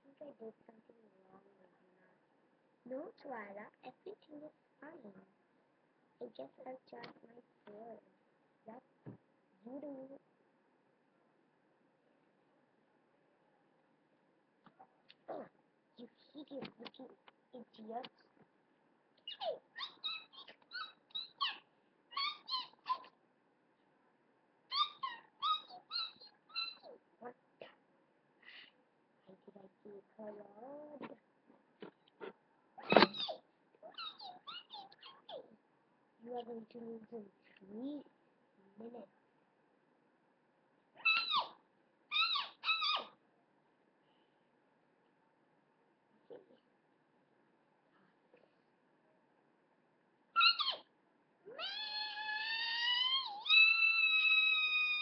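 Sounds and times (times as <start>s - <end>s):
child squealing: 19.3s - 23.1s, 24.7s - 27.0s, 32.8s - 35.4s, 41.0s - 43.2s, 50.4s - 50.9s, 51.5s - 55.0s.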